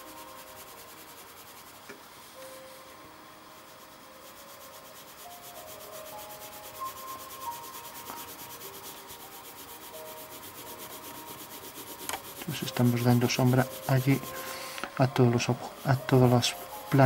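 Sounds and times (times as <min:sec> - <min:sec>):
pencil rubbing on paper: 0:00.0 - 0:01.9, 0:03.6 - 0:17.0.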